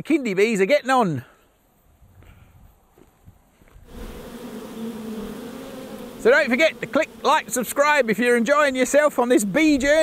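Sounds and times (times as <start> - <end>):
honey bees buzzing: 3.8 - 10.0.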